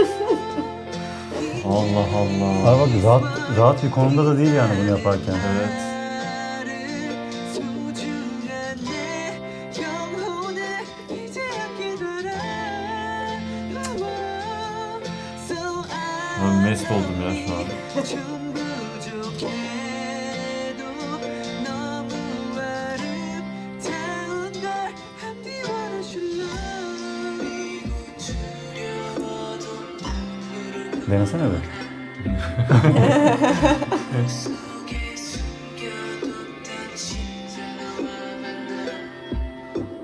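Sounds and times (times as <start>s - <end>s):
man singing into microphone: 0.0s - 40.0s
keyboard piano chords: 31.2s - 35.7s.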